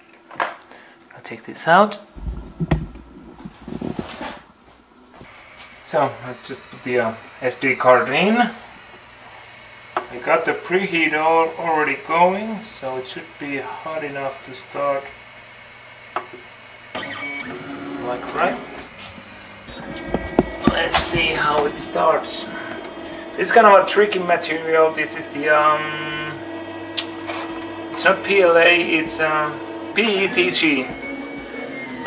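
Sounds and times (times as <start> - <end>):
rumbling handling noise: 2.2 - 5.3, 18.9 - 23.2
three-d printer electric hum: 2.2 - 32.0.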